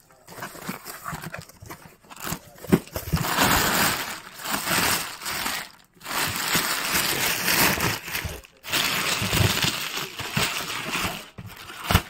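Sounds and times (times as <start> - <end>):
plastic bags rustling: 0.0 - 12.0.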